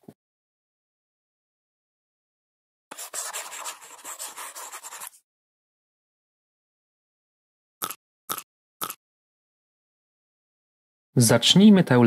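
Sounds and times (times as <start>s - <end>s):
chalk scratching on blackboard: 2.9s - 5.2s.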